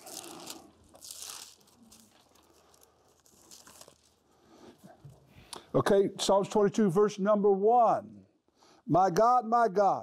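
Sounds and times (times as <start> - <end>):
pages rustling: 0.0 - 4.2.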